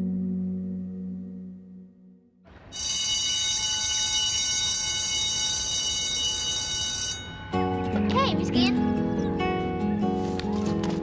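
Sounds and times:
electric bell ringing: 2.7 - 7.8.

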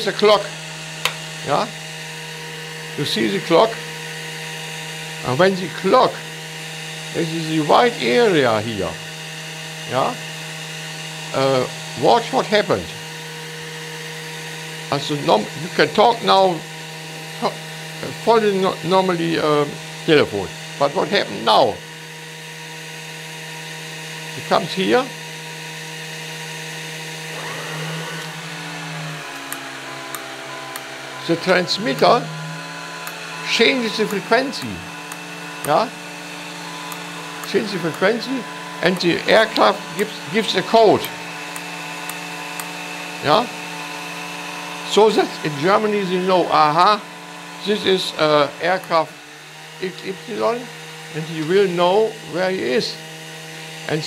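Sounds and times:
electrical hum and whine: 0.0 - 46.2
thin high whine: 27.2 - 33.2.

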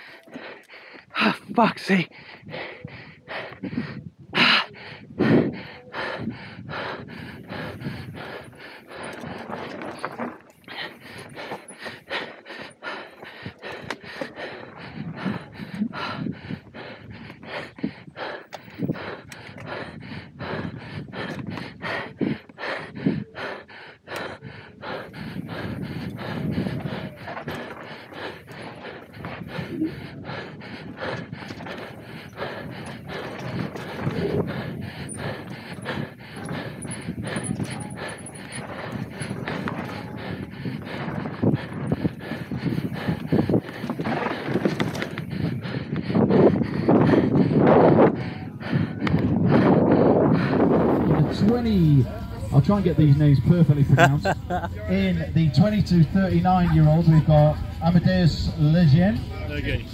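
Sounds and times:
person panting hard: 0.0 - 59.5
tyres rumbling on dirt trail: 4.4 - 59.9
bike rattling and knocking: 7.7 - 14.5, 25.4 - 48.0.

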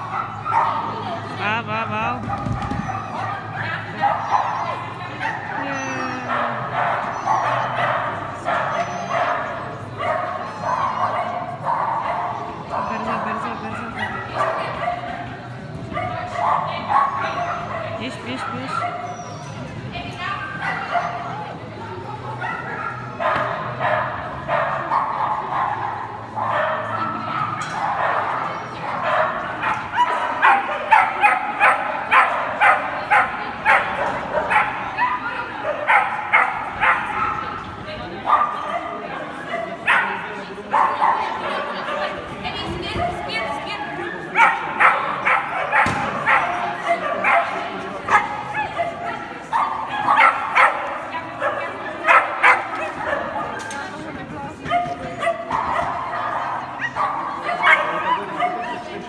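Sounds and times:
dog yipping and barking: 2.4 - 13.0, 18.5 - 19.6.

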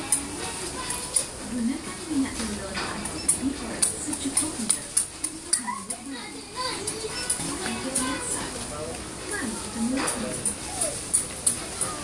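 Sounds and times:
indistinct chatter: 0.0 - 12.0
young child's voice: 5.5 - 8.6, 9.3 - 11.0, 11.6 - 12.0.

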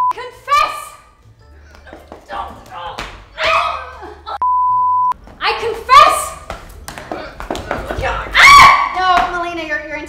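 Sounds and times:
woman crying out and shouting: 3.3 - 4.2
censor bleep: 4.4 - 5.2.

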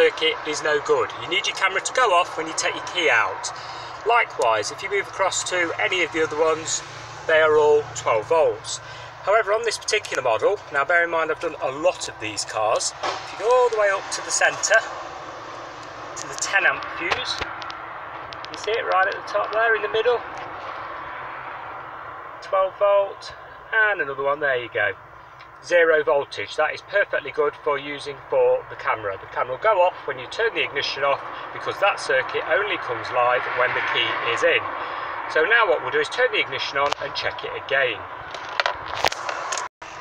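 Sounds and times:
person speaking: 0.0 - 14.9, 16.2 - 17.6.

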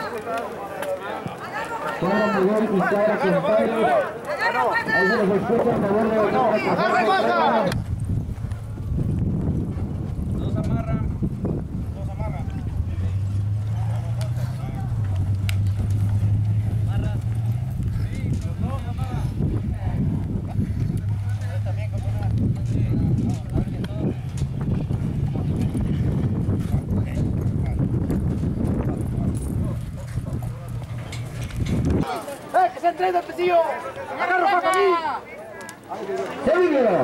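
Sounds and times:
murmuring voices: 0.0 - 9.1, 10.2 - 37.0
hoofbeats on dirt: 7.7 - 34.2.

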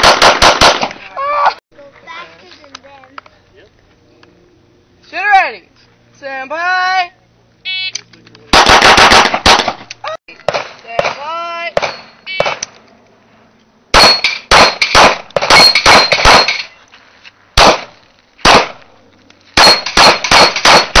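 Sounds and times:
handgun shots: 8.6 - 11.2, 11.8 - 12.7, 14.0 - 16.7, 17.6 - 18.8, 19.6 - 21.0
metallic ringing of steel targets: 11.8 - 12.5, 14.0 - 16.8, 19.6 - 21.0.

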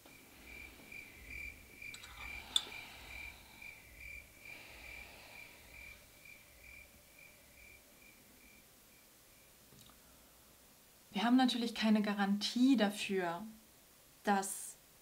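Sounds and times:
faint cricket chirping: 0.0 - 10.6.

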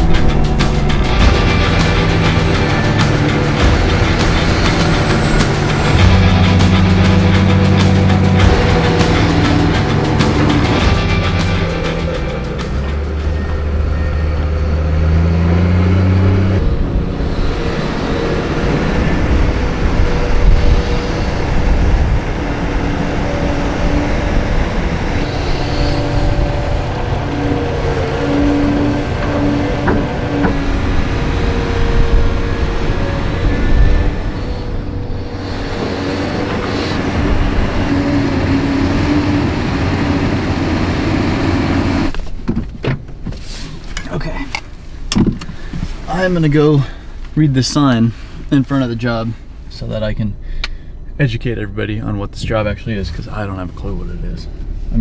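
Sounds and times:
excavator engine and hydraulics: 0.0 - 55.0.

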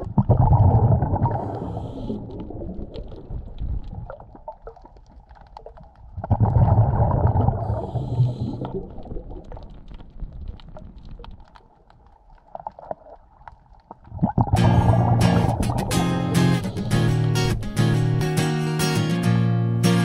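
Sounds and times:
diver exhaling bubbling underwater: 0.0 - 4.9, 6.2 - 9.9, 14.0 - 17.3.

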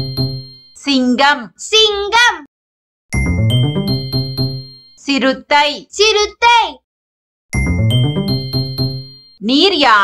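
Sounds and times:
bell-like chime jingle: 0.0 - 0.8, 3.1 - 5.2, 7.5 - 9.4.

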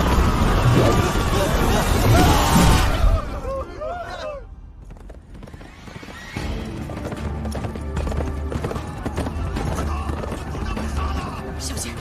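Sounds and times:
horse hoofbeats: 4.8 - 12.0.

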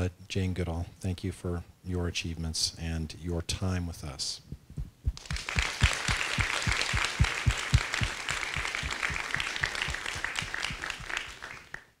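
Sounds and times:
audience applauding: 5.2 - 12.0
close hand claps: 5.2 - 12.0.

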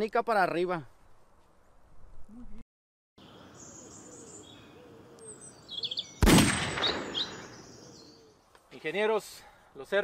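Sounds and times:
descending bird trill: 3.2 - 8.4
songbirds chirping: 3.2 - 10.0.

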